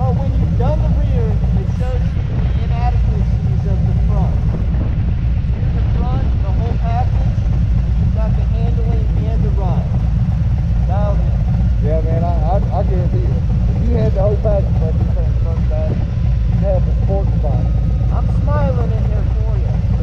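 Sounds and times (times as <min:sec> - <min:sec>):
motorcycle engines idling: 0:00.0 - 0:20.0.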